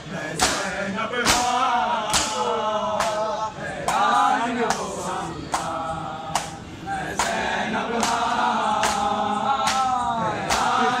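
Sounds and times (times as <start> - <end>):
men chanting a lament: 0.0 - 11.0
chest-beating slaps: 0.4 - 3.2, 5.5 - 7.4, 8.0 - 10.8.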